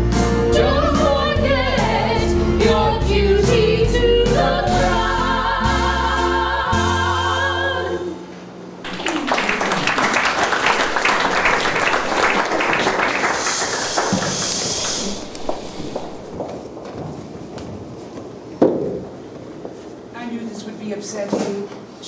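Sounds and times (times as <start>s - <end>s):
choir singing held chord: 0.5s - 8.2s
audience applauding: 8.8s - 16.4s.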